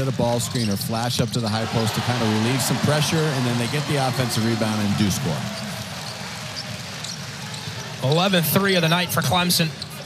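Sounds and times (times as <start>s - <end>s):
crowd noise: 0.0s - 10.0s.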